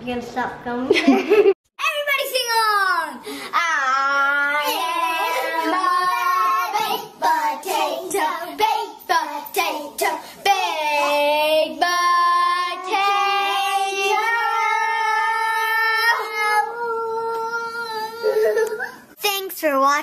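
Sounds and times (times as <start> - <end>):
girl singing unaccompanied: 3.1 - 19.0.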